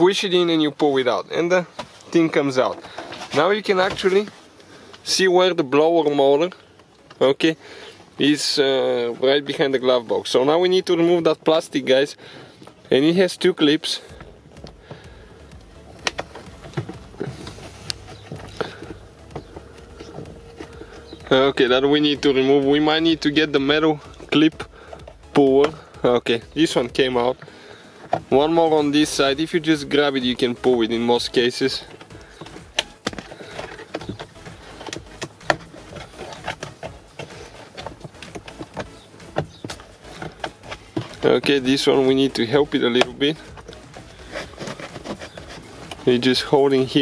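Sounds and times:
steady low hum: 14.0 - 47.0.

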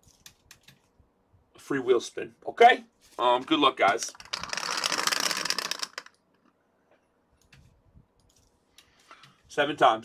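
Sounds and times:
dice rattling in plastic dome: 3.9 - 6.2.

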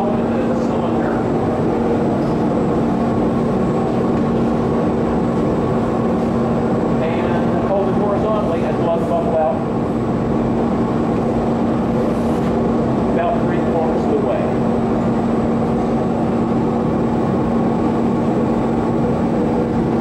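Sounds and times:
constant low hum: 0.0 - 20.0
exhaust hood running: 0.0 - 20.0
gas furnace burners roaring: 0.0 - 20.0.

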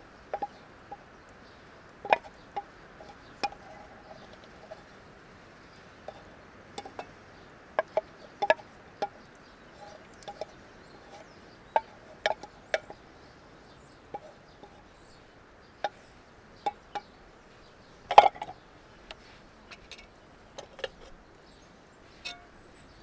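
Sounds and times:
faint birdsong: 0.0 - 23.0
wooden spatula tapping iron pan: 0.3 - 1.0, 2.0 - 4.8, 7.8 - 9.4, 11.1 - 13.0, 16.6 - 17.2, 22.2 - 22.5
wooden spoon scraping metal pot: 2.0 - 5.0, 6.0 - 7.2, 7.8 - 13.0, 14.1 - 17.1.

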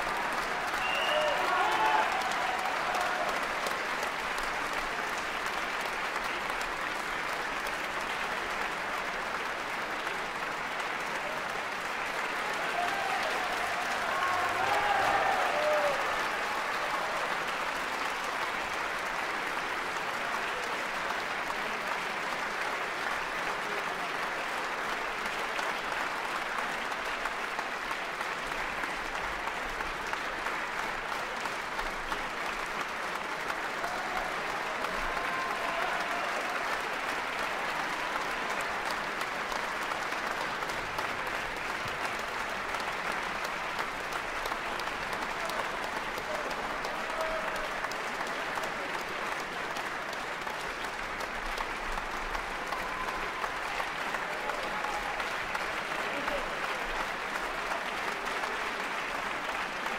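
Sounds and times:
audience applauding: 0.0 - 59.9.

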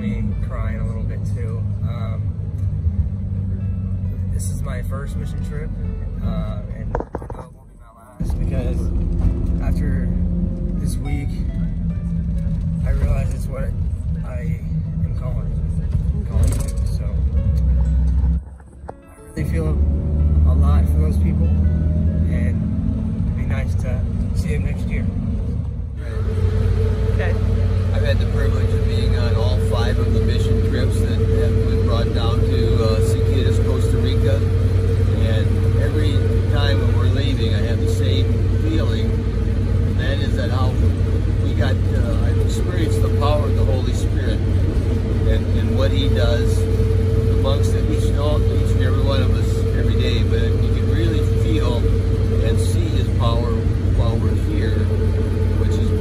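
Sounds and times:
constant hum: 0.0 - 56.0
engine and road rumble: 0.0 - 56.0.

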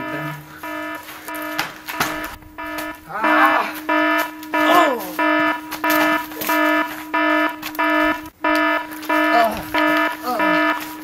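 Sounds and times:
electronic alarm beeping: 0.0 - 11.0
short vocal cries: 3.0 - 3.9, 4.6 - 5.2.

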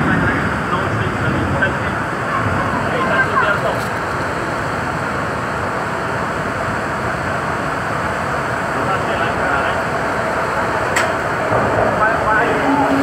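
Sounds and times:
metro train pulling in: 0.0 - 13.0
faint tone from train: 12.4 - 13.0.

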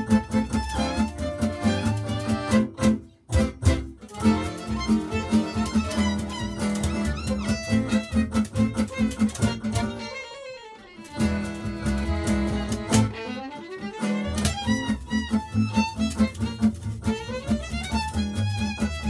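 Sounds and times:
upright bass: 0.0 - 10.2, 11.1 - 13.3, 13.9 - 19.0
accordion: 0.0 - 19.0
acoustic guitar rhythm: 0.0 - 19.0
violin lead: 0.0 - 19.0.

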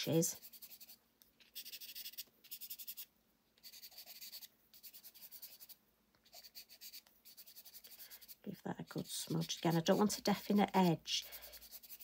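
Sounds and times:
pastel pencil scratching on paper: 0.0 - 12.0.

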